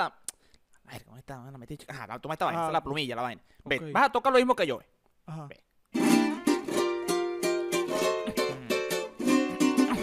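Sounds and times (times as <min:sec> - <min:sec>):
guitar riff with ringing chord: 0:06.0 - 0:10.0.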